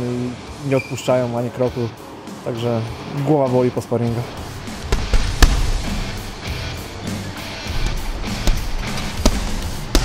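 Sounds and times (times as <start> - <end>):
background music: 0.0 - 10.0
boxing gloves thumping punching bag: 4.6 - 6.5, 7.7 - 10.0.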